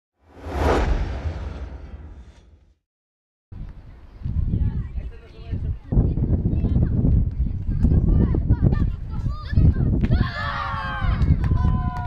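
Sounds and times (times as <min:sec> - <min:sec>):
deep rumble: 0:00.2 - 0:02.8
whoosh: 0:00.2 - 0:02.8.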